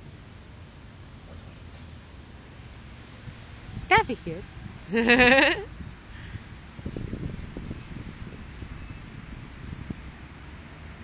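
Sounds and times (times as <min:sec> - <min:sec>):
wind rumbling on microphone: 0:02.2 - 0:11.0.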